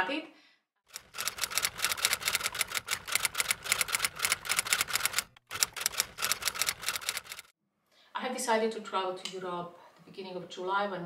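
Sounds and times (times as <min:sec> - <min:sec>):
typewriter keystrokes: 0:00.9 - 0:07.5.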